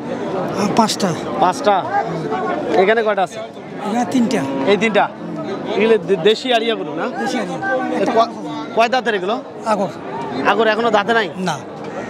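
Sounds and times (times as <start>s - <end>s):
men talking in a crowd: 0.0s - 12.0s.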